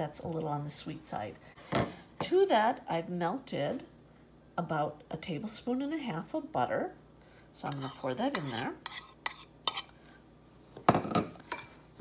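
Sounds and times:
metal spoon scraping a bowl: 7.6 - 9.9.

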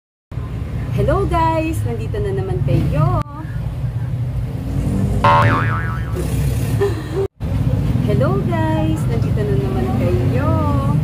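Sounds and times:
cartoon boing sound effect: 5.2 - 6.6.

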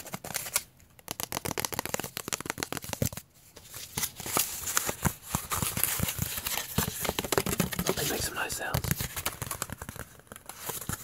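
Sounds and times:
fingers tapping on cardboard: 1.0 - 3.2, 5.0 - 8.1.

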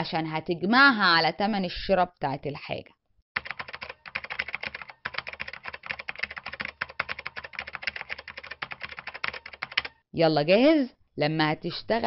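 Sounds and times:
rapid keyboard typing clicks: 3.4 - 10.0.

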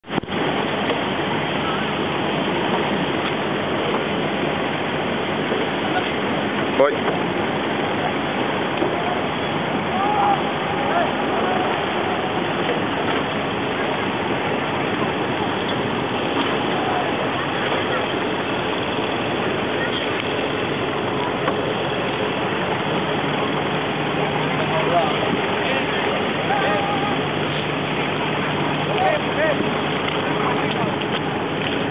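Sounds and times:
boat engine running: 0.0 - 31.9
water rushing past hull: 0.0 - 31.9.

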